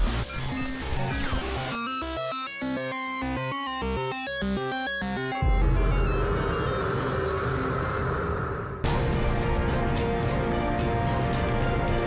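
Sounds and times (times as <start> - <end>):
low rumble: 5.4 - 10.0.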